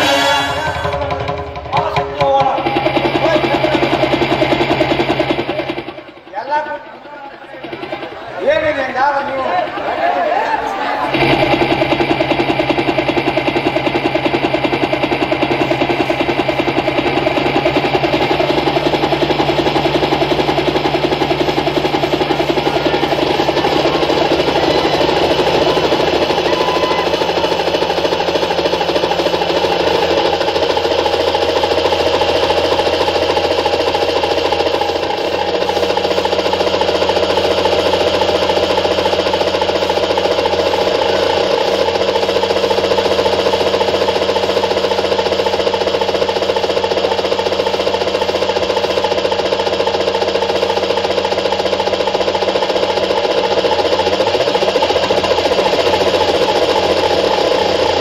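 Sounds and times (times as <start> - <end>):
helicopter engine drone over loudspeakers: 0.0 - 58.0.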